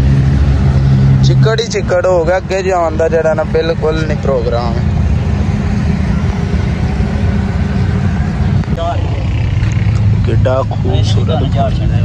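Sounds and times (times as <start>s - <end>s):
loud low rumble: 0.0s - 12.0s.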